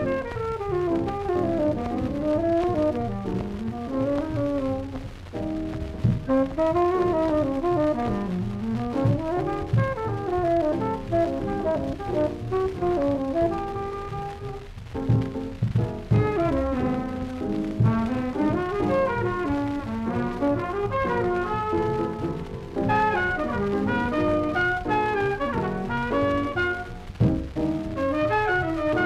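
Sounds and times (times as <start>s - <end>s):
horn playing melodic runs: 0.0s - 5.1s, 6.2s - 15.3s, 16.0s - 27.1s, 27.9s - 29.0s
drums and rhythm section: 0.0s - 29.0s.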